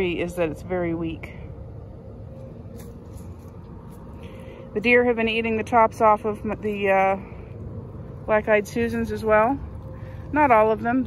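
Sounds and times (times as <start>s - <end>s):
low outdoor rumble: 0.0s - 11.0s
faint rustles: 1.3s - 4.8s.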